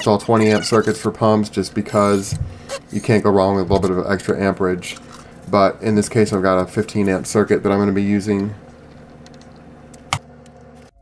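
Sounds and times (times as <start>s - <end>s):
low steady hum: 0.0s - 11.0s
electrical parts clicking and rattling: 1.9s - 10.9s.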